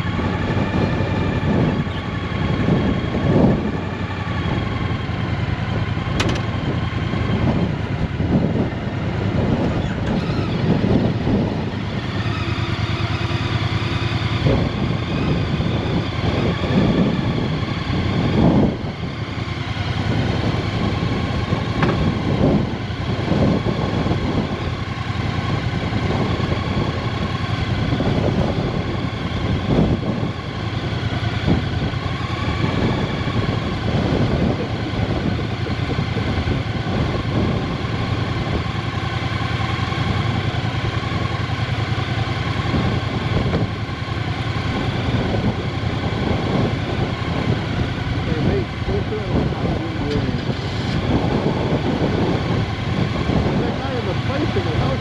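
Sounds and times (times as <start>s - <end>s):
motorcycle engine idling: 0.0s - 55.0s
wind buffeting microphone: 0.0s - 55.0s.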